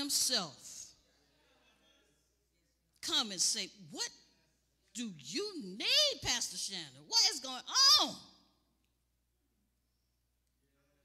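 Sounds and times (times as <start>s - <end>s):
woman's amplified voice: 0.0s - 0.9s, 3.0s - 4.2s, 4.9s - 8.4s.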